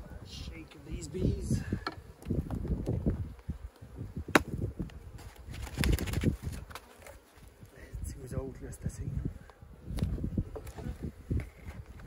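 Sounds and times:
wooden hive board knocking: 0:04.3 - 0:04.6.

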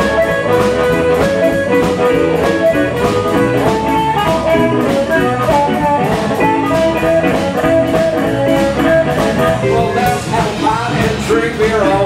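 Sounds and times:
drum kit beat: 0:00.0 - 0:12.0
electric guitar: 0:00.0 - 0:12.0
live blues band playing: 0:00.0 - 0:12.0.

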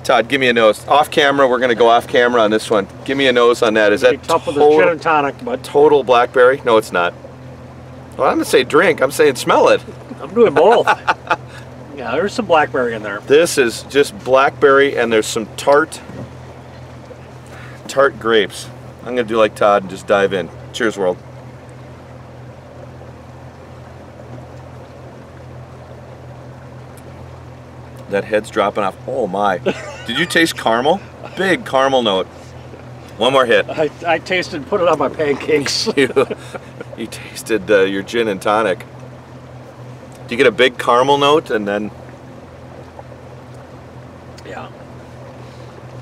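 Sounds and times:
boat motor humming: 0:00.0 - 0:46.0.

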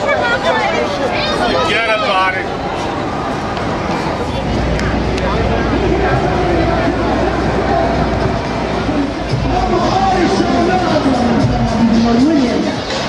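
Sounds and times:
low rumble of traffic: 0:00.0 - 0:12.4
people talking: 0:00.0 - 0:13.0.

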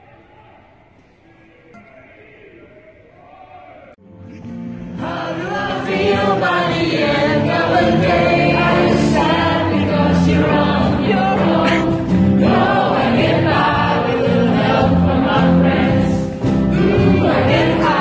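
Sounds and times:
choir singing with music: 0:01.7 - 0:18.0.

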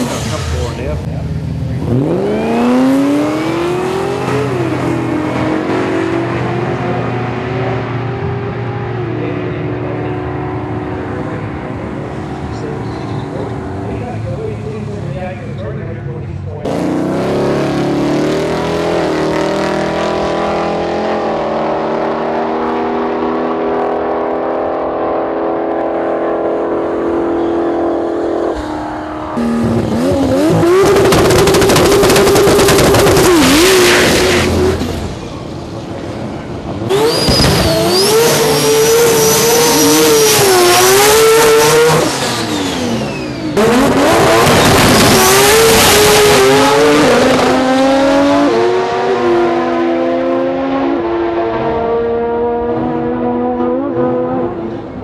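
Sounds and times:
engines revving at full throttle: 0:00.0 - 0:55.0
tyre squeal: 0:36.9 - 0:40.5.

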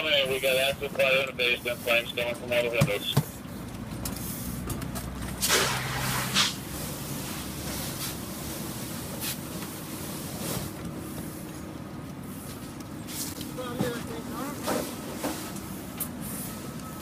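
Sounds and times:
fire engine pump drone: 0:00.0 - 0:17.0
loud hiss bursts: 0:05.4 - 0:06.6.

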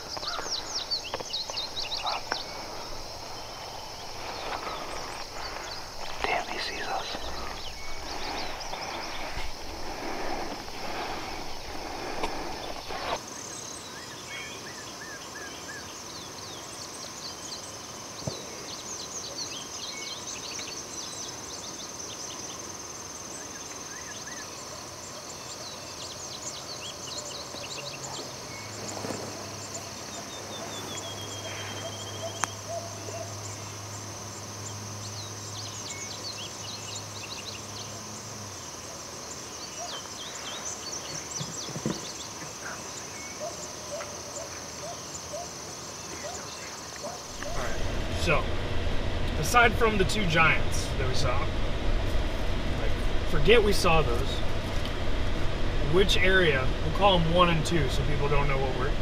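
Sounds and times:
birds chirping and trilling: 0:00.0 - 0:59.0
high insect drone: 0:00.0 - 0:59.0
low steady hum: 0:47.3 - 0:59.0.

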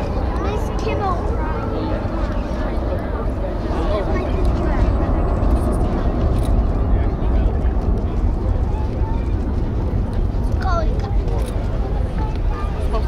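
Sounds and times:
jet engines rumbling: 0:00.0 - 0:13.0.

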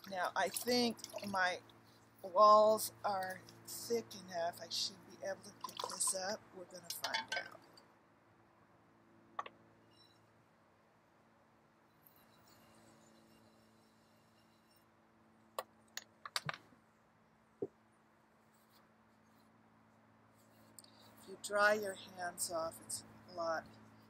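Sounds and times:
faint steady hum: 0:00.0 - 0:24.0.

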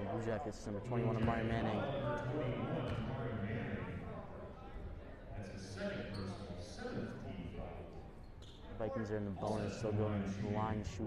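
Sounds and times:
man speaking with echo: 0:00.0 - 0:04.4, 0:08.8 - 0:11.0.

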